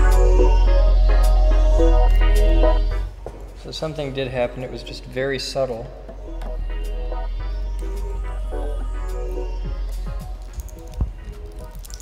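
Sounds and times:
background music with bass drone: 0:00.0 - 0:03.2, 0:06.2 - 0:12.0.

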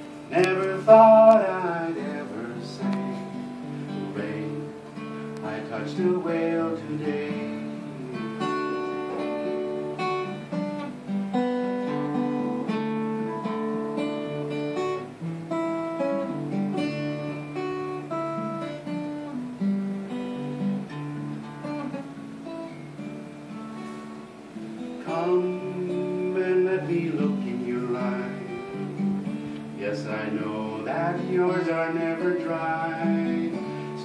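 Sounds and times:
man singing: 0:00.0 - 0:10.0, 0:25.0 - 0:34.0
acoustic guitar playing chords: 0:00.0 - 0:34.0.

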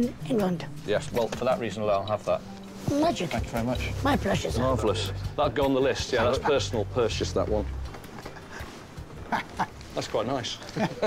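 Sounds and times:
man laughing: 0:08.2 - 0:09.9, 0:10.6 - 0:11.0.

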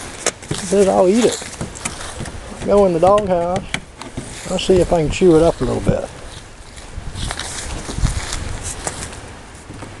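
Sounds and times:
paws scraping on cardboard: 0:00.2 - 0:04.5.

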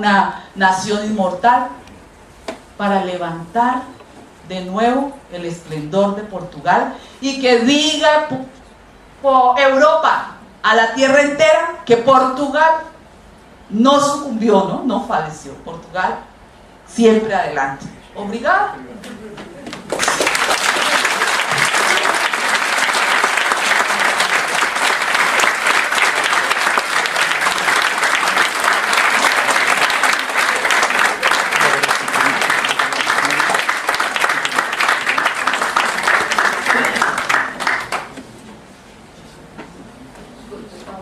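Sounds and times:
audience applauding: 0:19.8 - 0:38.2.

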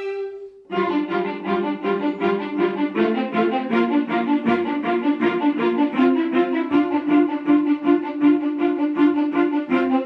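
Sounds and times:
orchestral string music: 0:00.0 - 0:10.0.

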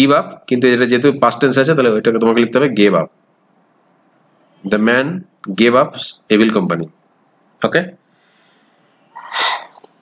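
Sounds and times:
faint steady hiss: 0:00.0 - 0:10.0
person's noisy breath: 0:08.1 - 0:09.9.

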